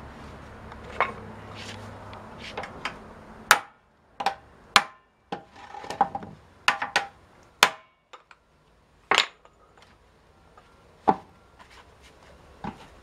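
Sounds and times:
hammer striking metal hoops: 0:02.6 - 0:05.1, 0:06.7 - 0:08.2.

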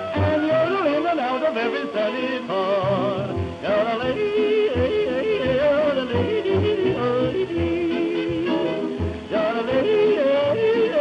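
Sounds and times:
hot jazz band playing: 0:00.0 - 0:02.2
man yodelling: 0:00.0 - 0:07.8
record surface noise: 0:00.0 - 0:11.0.

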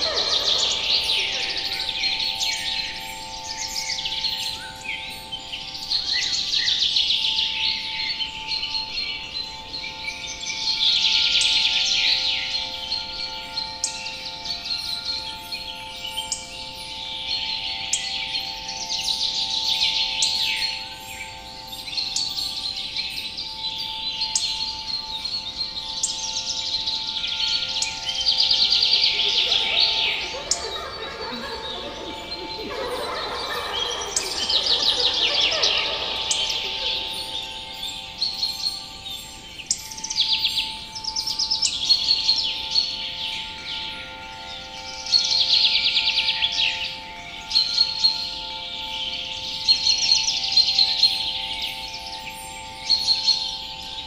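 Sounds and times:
drone of held tones: 0:00.0 - 0:05.2, 0:27.5 - 0:39.5
songbirds singing: 0:00.0 - 0:54.0.

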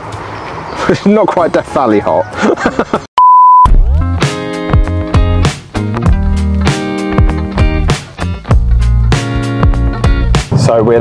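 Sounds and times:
censor bleep: 0:03.2 - 0:03.7
background music: 0:03.7 - 0:11.0.

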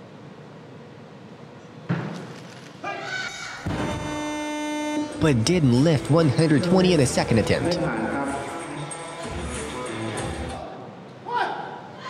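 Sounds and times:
music with held chord: 0:05.0 - 0:10.5.

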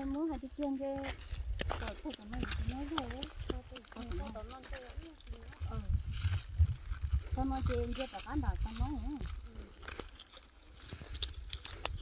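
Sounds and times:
people talking: 0:00.0 - 0:06.0, 0:07.4 - 0:09.7
footsteps on dry dirt: 0:00.0 - 0:12.0
wind rumble on microphone: 0:00.9 - 0:10.0, 0:10.8 - 0:12.0.

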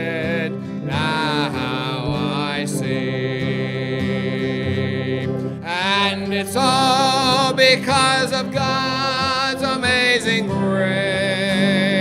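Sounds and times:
instrumental accompaniment: 0:00.0 - 0:12.0
man singing a hymn: 0:00.0 - 0:12.0.

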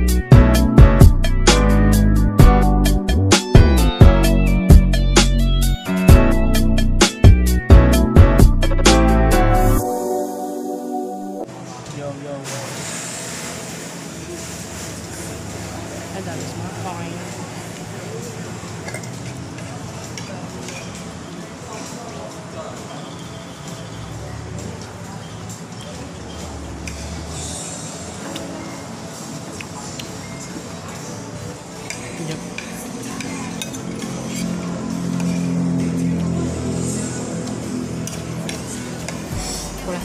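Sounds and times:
low steady music notes: 0:00.0 - 0:11.7
dishes and cutlery clinking: 0:18.6 - 0:23.3, 0:28.2 - 0:36.0.

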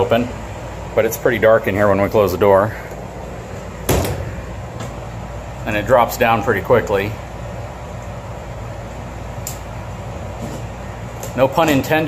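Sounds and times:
air conditioner running: 0:00.0 - 0:12.0.

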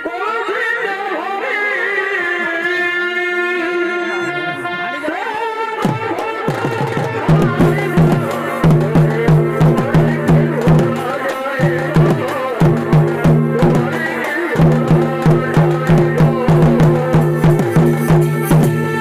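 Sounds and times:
deep drums beating: 0:05.8 - 0:19.0
reed pipe melody: 0:07.2 - 0:19.0.

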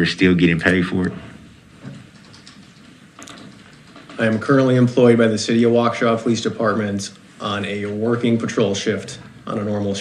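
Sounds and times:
faint clicks and taps: 0:01.0 - 0:04.8.

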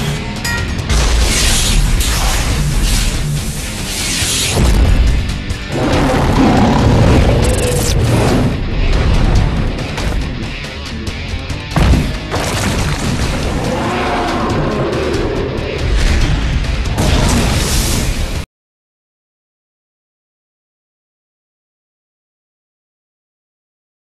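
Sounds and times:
dramatic cartoon score: 0:00.0 - 0:18.4
booming impact effects: 0:04.5 - 0:10.2, 0:11.7 - 0:14.4, 0:15.8 - 0:18.4.

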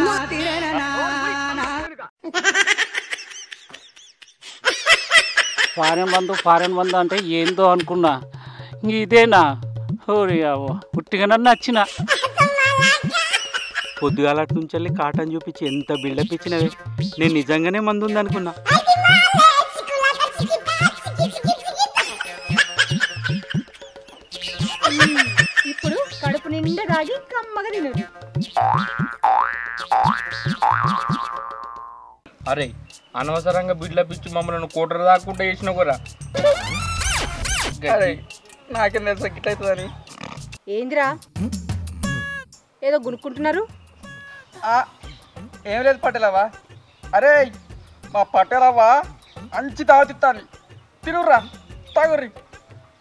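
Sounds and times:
high-pitched giggling laughter: 0:02.2 - 0:08.0, 0:11.8 - 0:14.2, 0:18.7 - 0:27.0, 0:36.4 - 0:36.9
cartoon boing sound effect: 0:28.0 - 0:32.2
background music with low note: 0:32.4 - 0:40.4.

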